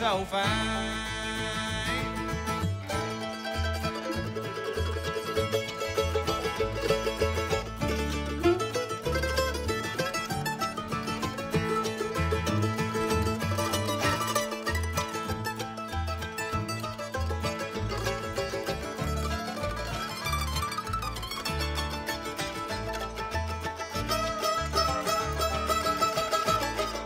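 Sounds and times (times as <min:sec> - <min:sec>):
acoustic guitar: 0:00.0 - 0:27.0
banjo: 0:00.0 - 0:27.0
mandolin picked runs: 0:00.0 - 0:27.0
upright bass: 0:00.0 - 0:27.0.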